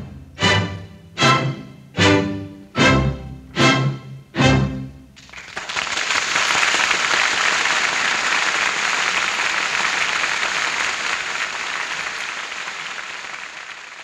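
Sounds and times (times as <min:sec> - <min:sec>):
audience applauding: 0:05.2 - 0:14.0.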